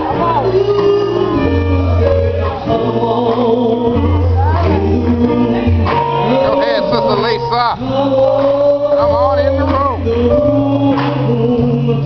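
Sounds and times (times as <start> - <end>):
band accompaniment with bass: 0.0 - 12.0
woman singing gospel: 0.0 - 12.0.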